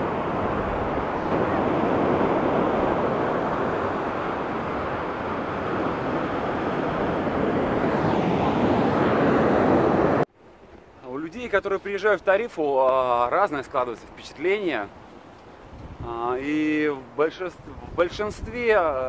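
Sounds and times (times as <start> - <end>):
wind buffeting microphone: 0.0 - 10.3, 14.7 - 19.0
wind rushing: 0.0 - 10.3
ocean surf: 0.0 - 19.0.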